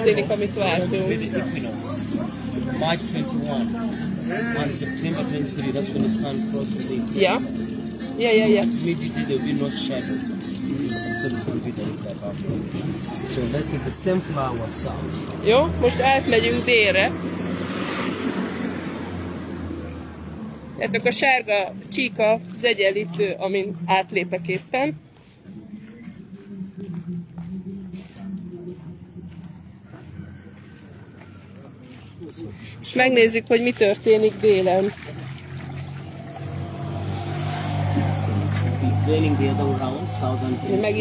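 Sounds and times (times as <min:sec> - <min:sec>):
vehicle engine droning: 0:00.0 - 0:22.8, 0:26.0 - 0:41.0
water pouring into plastic basin: 0:05.0 - 0:14.0, 0:33.5 - 0:38.2.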